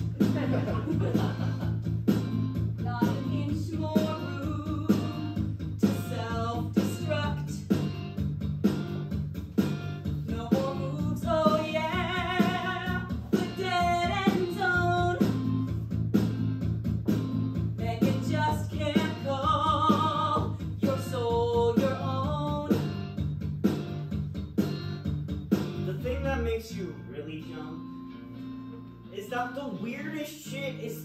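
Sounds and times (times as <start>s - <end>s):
rock band accompaniment: 0.0s - 26.1s
person singing with vibrato: 2.8s - 7.8s, 10.2s - 15.6s, 17.8s - 22.9s.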